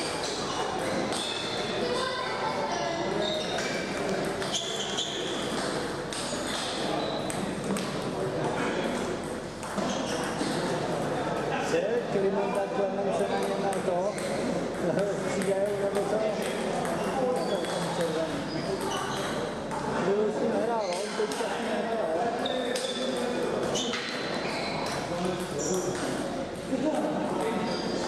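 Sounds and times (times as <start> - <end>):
table tennis balls clicking: 3.4 - 8.2, 8.8 - 10.8, 13.2 - 20.0.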